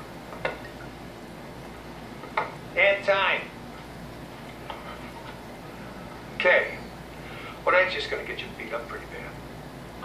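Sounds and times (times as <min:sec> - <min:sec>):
soundtrack background hiss: 0:00.0 - 0:10.0.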